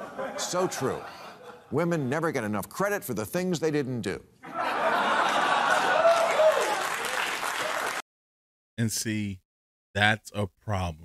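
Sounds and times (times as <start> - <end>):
audience applauding: 5.2 - 8.0.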